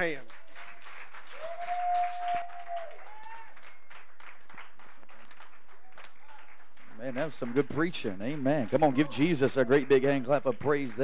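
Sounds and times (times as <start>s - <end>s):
crowd applauding: 0.0s - 11.0s.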